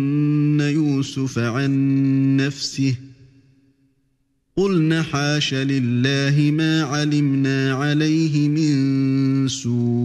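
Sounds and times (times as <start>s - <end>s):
man chanting melodically: 0.0s - 3.5s, 4.6s - 10.0s.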